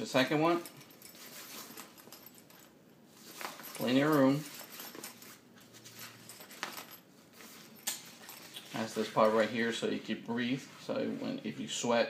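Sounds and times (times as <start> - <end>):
fabric rustling and scratching: 0.5 - 11.4.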